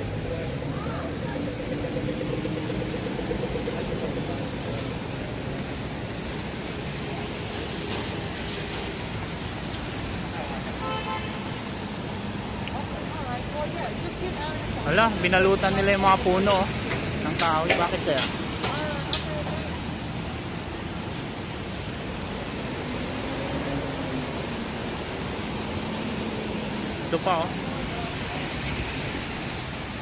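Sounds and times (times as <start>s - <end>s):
traffic on wet road: 0.0s - 30.0s.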